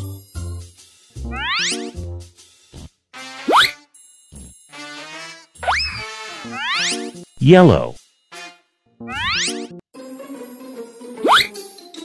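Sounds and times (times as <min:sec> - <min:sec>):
bright children's music: 0:00.0 - 0:02.4, 0:09.0 - 0:12.0.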